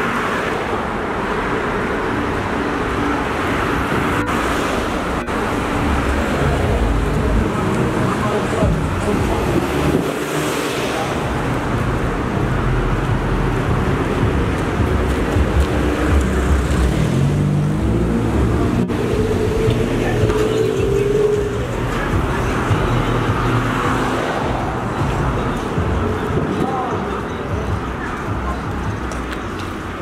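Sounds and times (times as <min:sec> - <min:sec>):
street traffic rumble: 0:00.0 - 0:30.0.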